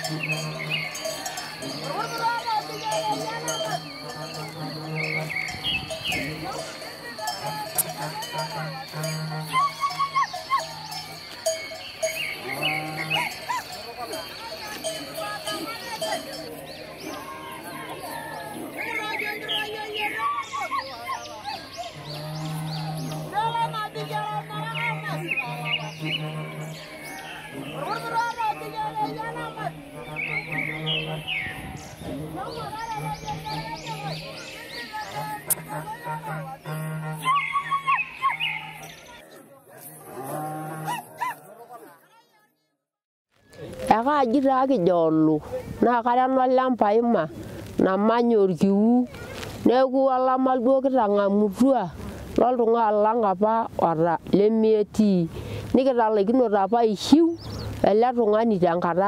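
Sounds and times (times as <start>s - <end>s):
cow mooing: 0.0s - 14.2s, 22.0s - 34.2s, 40.0s - 41.2s
cattle bells clanking: 0.0s - 39.2s
group of voices chanting: 0.0s - 42.2s.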